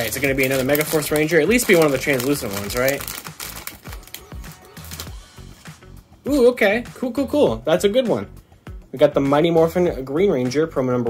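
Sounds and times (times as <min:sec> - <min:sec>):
foil wrapper crinkling and tearing: 0:00.0 - 0:05.2
background music: 0:00.0 - 0:11.0.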